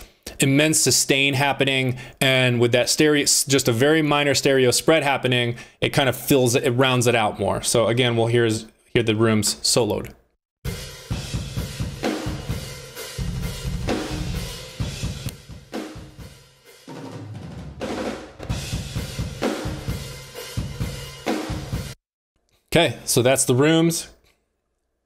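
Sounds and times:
metal drum kit playing: 0:10.7 - 0:22.0.

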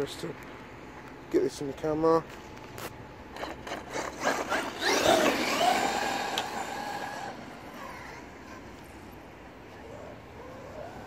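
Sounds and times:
electric motor whining: 0:03.9 - 0:08.0.

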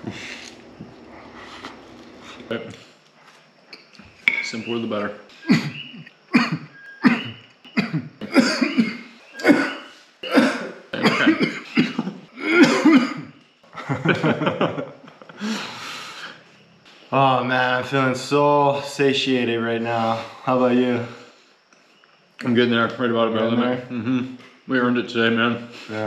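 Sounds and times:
man coughing: 0:05.4 - 0:13.3
throat clearing: 0:05.4 - 0:13.3.

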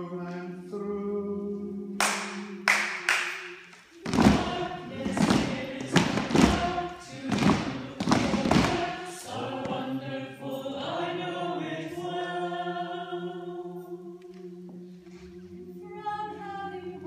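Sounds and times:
group singing: 0:00.0 - 0:17.0
hand claps: 0:02.0 - 0:09.1
steady rhythmic thumps: 0:02.1 - 0:10.0.

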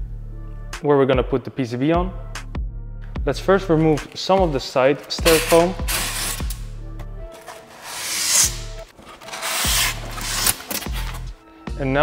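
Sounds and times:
background music: 0:00.0 - 0:12.0
styrofoam scraping inside cardboard box: 0:05.2 - 0:06.6, 0:07.3 - 0:11.3.

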